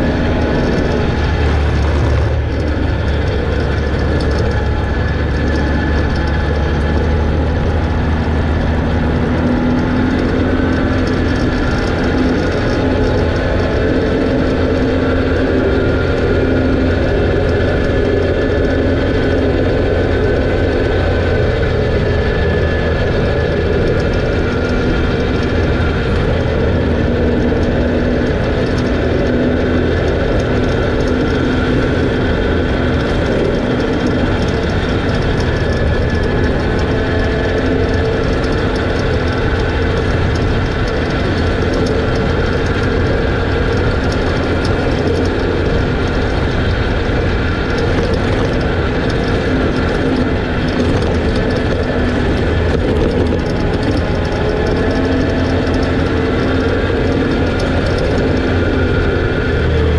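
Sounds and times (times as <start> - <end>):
atv engine running: 0.0 - 59.9
tyres on gravel trail: 0.0 - 59.9.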